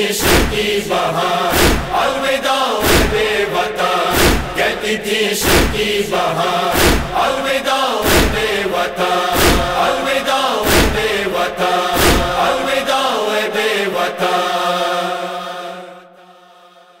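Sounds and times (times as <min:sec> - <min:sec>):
chanted voices holding long notes: 0:00.0 - 0:17.0
heavy chest-beating thumps: 0:00.2 - 0:11.3, 0:12.0 - 0:12.7.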